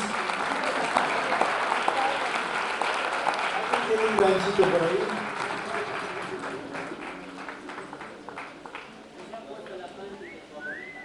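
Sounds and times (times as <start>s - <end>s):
audience applause: 0.0s - 9.8s.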